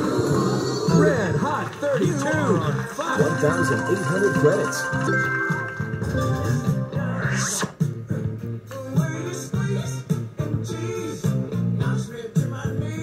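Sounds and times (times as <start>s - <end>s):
slot machine music with beat: 1.7s - 7.9s.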